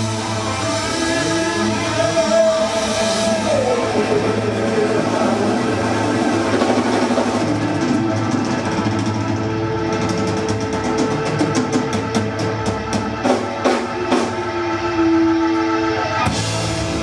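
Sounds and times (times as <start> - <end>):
electric guitar long notes: 0.0 - 17.0
hard rock band: 0.0 - 17.0.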